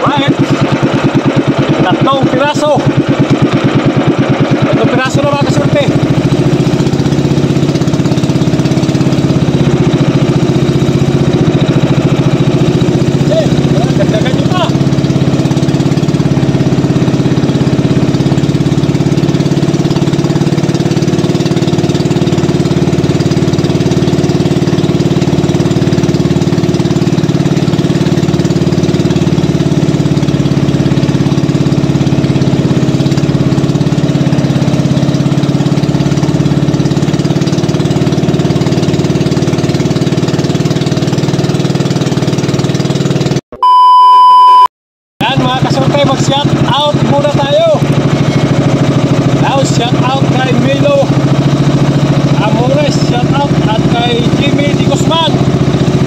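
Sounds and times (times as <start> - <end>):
boat engine running: 0.0 - 43.8, 45.2 - 56.0
loud electronic beep: 43.5 - 45.4.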